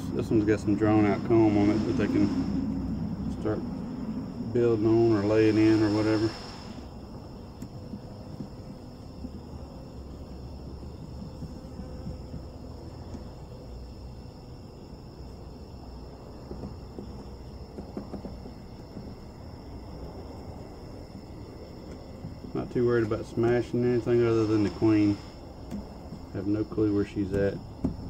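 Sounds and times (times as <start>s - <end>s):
low rumble: 0.0s - 5.6s
crickets trilling: 0.0s - 28.0s
faint wooden knocks: 10.6s - 13.4s, 16.3s - 19.4s, 25.6s - 26.4s, 27.3s - 28.0s.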